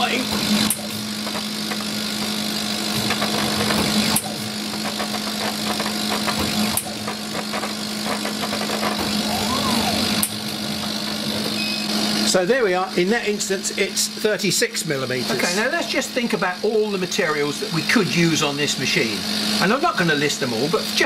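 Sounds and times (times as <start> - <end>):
laser cutter humming with crackle: 0.0 - 21.0.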